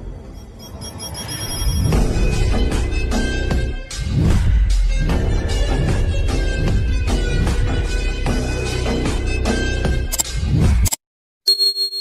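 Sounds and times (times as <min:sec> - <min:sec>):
background music: 0:00.0 - 0:10.9
bell-like ding chime: 0:00.4 - 0:02.0.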